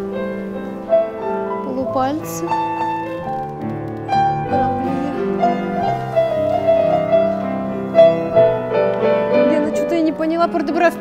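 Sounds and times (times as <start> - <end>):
piano accompaniment: 0.0 - 11.0.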